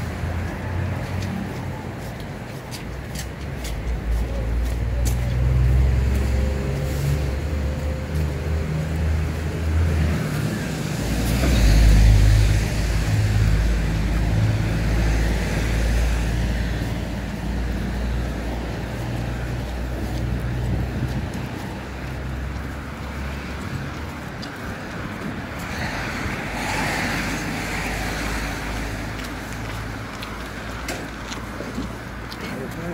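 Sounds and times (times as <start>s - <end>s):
vehicle engine rumbling: 0.0s - 32.9s
vehicle passing: 0.0s - 32.9s.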